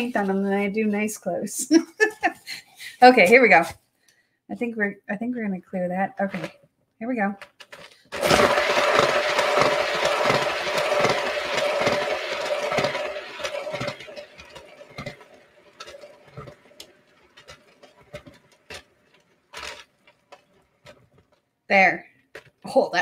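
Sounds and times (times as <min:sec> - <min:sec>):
paint spinner whirring: 0:08.0 - 0:21.4.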